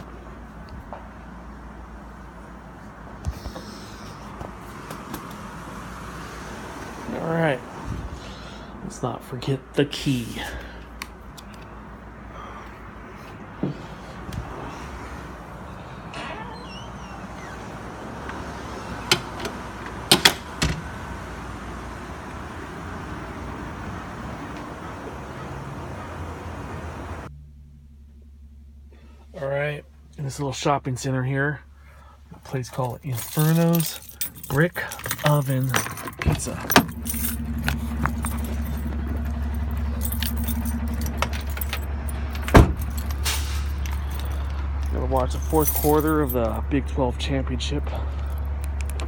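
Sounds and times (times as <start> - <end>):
steady outdoor noise: 0.0 - 49.0
steady low hum: 26.8 - 32.4, 35.7 - 44.9
keys jingling: 32.7 - 46.6
car door shutting: 35.8 - 43.7.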